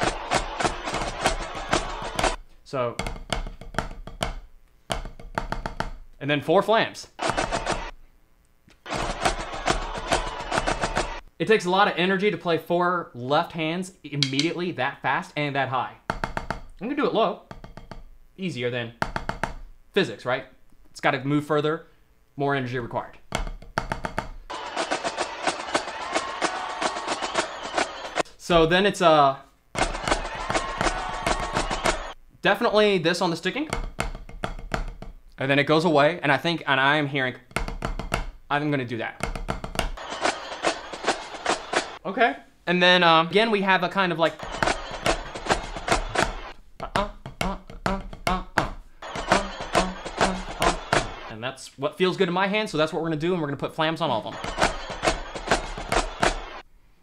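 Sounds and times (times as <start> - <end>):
marching snare drumming: 0.0 - 2.4, 7.2 - 7.9, 8.9 - 11.2, 24.5 - 28.3, 29.8 - 32.2, 39.9 - 42.0, 44.4 - 47.1, 47.9 - 51.3, 54.4 - 56.6
sticks on drum practice pad: 14.2 - 14.5, 44.4 - 51.2.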